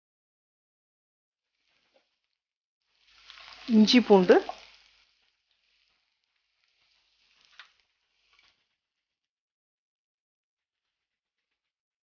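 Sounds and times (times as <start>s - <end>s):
onions frying in a pan: 1.4s - 9.2s.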